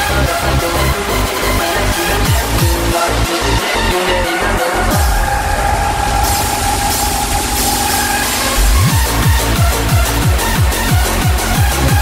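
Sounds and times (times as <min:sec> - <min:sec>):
hissing noise sweep: 0:04.9 - 0:09.6
kick drum: 0:08.7 - 0:12.0.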